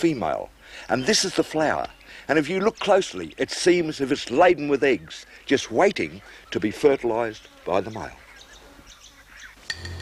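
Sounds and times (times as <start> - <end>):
faint bird chirps: 7.4 - 9.7.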